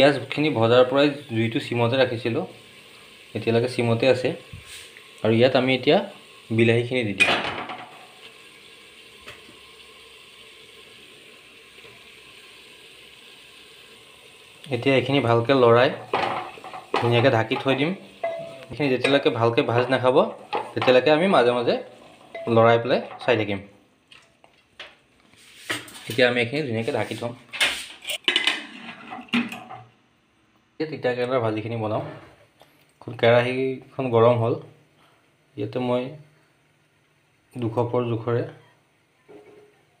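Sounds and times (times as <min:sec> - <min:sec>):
faint steady hiss: 0:00.0 - 0:40.0
pressure cooker lid clanking: 0:16.1 - 0:19.2.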